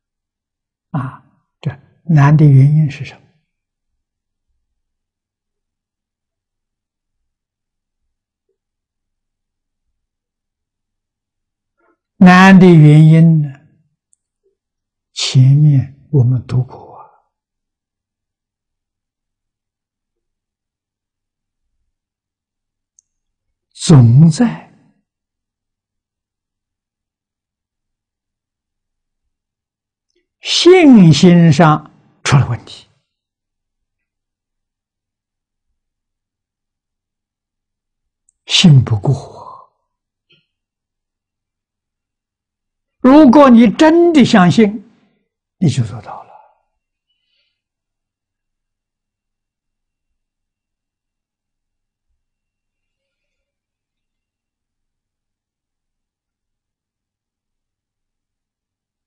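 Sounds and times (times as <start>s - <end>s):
elderly man speaking: 1.0s - 3.3s, 12.2s - 13.6s, 15.1s - 17.2s, 23.8s - 24.8s, 30.4s - 32.9s, 38.4s - 39.7s, 43.0s - 44.9s, 45.6s - 46.5s.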